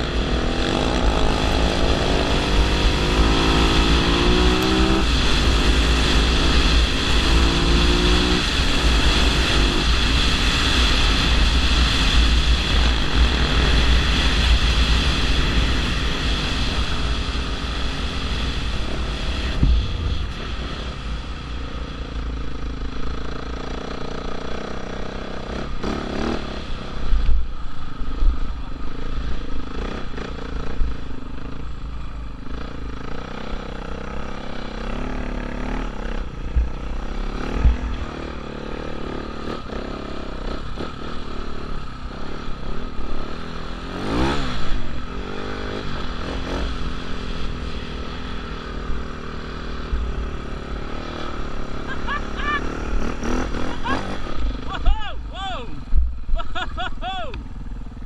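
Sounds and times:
wind rumble on microphone: 0.0s - 21.4s, 36.2s - 38.4s
dirt bike engine revving: 0.0s - 27.2s, 32.4s - 58.0s.

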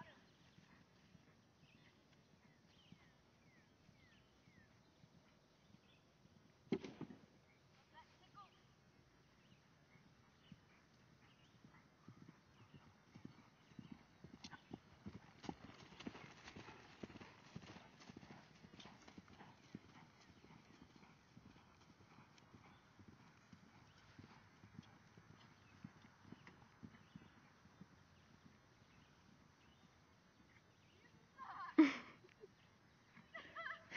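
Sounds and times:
hoofbeats on grass: 9.4s - 31.5s.

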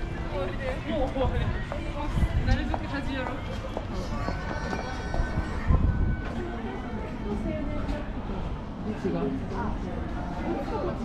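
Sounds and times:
footsteps on pavement: 0.0s - 6.6s
passers-by talking: 0.0s - 11.0s.

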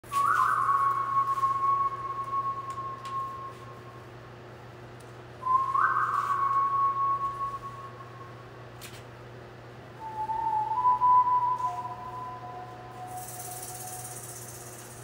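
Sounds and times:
person whistling held notes: 0.1s - 4.1s, 5.4s - 8.4s, 10.0s - 14.9s.

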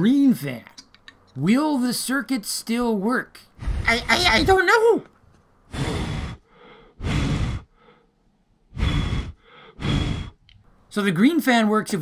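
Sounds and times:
person blowing puffs of breath: 5.7s - 8.1s, 8.7s - 10.4s.

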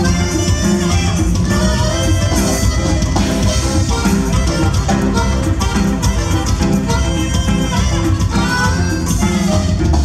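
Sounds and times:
live band playing dance music: 0.0s - 10.0s.

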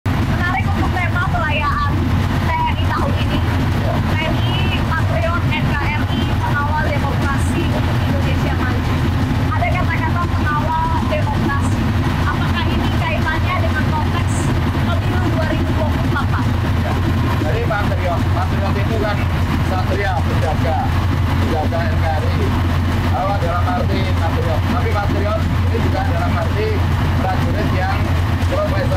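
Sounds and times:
low engine rumble: 0.1s - 28.9s
woman talking: 0.2s - 16.8s.

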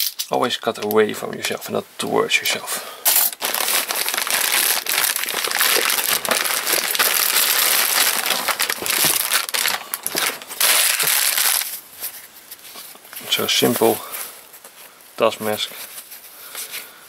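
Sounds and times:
plastic wrapping crinkling and tearing: 3.0s - 13.9s.

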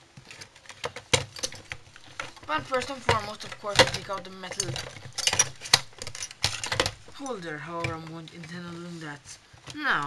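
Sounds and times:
plastic and metal parts knocking: 0.0s - 10.0s.

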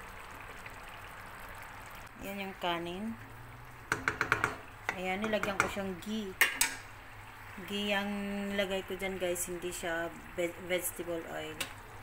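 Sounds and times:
wooden spatula knocking on metal pot: 3.9s - 5.8s.

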